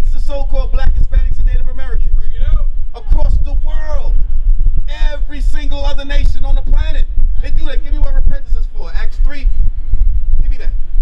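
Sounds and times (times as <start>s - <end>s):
man speaking through a microphone: 0.0s - 4.2s, 4.8s - 9.6s, 10.4s - 10.8s
steady low rumble: 0.0s - 11.0s.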